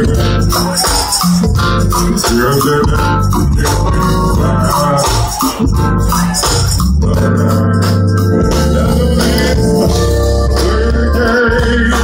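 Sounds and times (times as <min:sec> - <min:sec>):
keyboard chords: 0:00.0 - 0:12.0
live band playing: 0:00.0 - 0:12.0
steady bass notes: 0:00.0 - 0:12.0.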